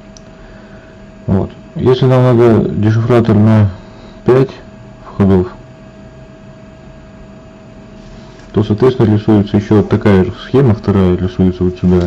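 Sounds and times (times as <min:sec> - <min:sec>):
faint hum tone: 0:00.0 - 0:12.0.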